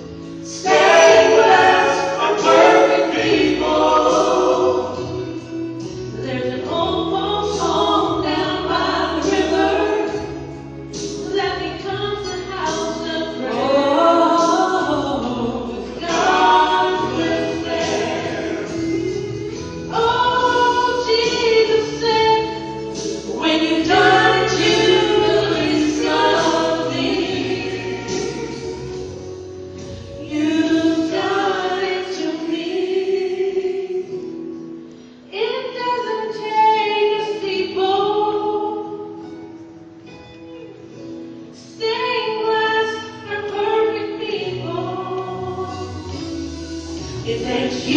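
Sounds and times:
vocal group singing gospel: 0.3s - 6.8s, 7.5s - 10.4s, 13.2s - 29.2s, 29.8s - 34.2s, 45.8s - 47.9s.

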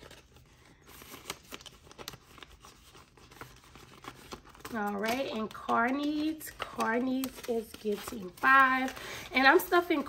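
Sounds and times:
banknotes rustling and crinkling: 0.0s - 10.0s.

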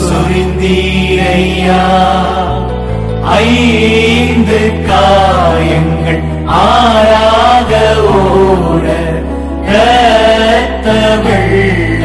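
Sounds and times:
low musical accompaniment: 0.0s - 12.0s.

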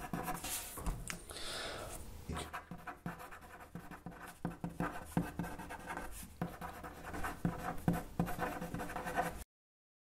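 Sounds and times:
pen scratching on paper: 0.0s - 0.7s, 2.4s - 9.4s.

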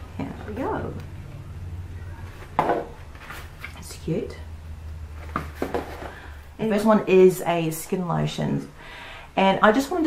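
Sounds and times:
low steady hum: 0.0s - 10.0s
bottles knocking in cardboard box: 2.6s - 3.0s.

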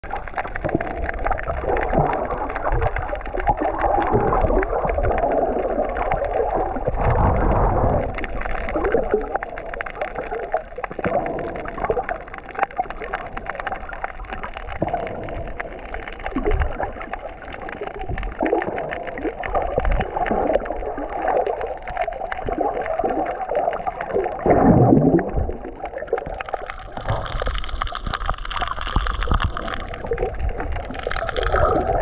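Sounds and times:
fine crackle of clicks: 0.0s - 32.0s
underwater gurgling and bubbling: 0.0s - 32.0s.

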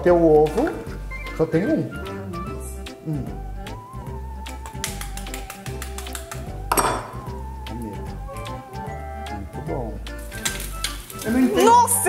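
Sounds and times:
background music: 0.0s - 12.0s
egg sizzling in frying pan: 10.1s - 12.0s.

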